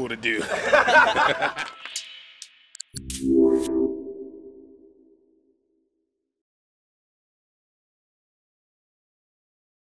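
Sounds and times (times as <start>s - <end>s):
synth chord hit: 3.0s - 5.8s.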